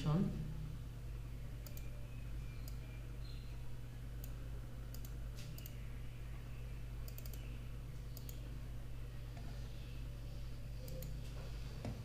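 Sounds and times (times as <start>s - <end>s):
low electrical hum: 0.0s - 12.0s
computer mouse clicking: 1.6s - 2.9s, 4.2s - 5.8s, 7.0s - 7.5s, 8.1s - 8.5s, 10.8s - 11.2s.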